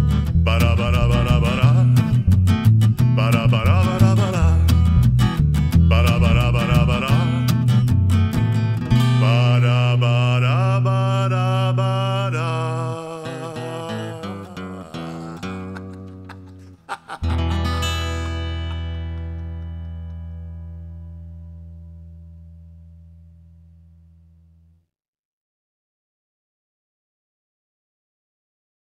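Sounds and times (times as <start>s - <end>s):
guitar-led band playing: 0.0s - 9.2s, 13.9s - 21.9s.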